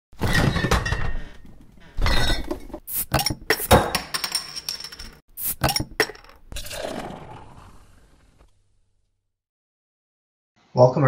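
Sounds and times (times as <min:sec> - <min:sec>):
glass clinking and clattering: 0:00.2 - 0:06.4.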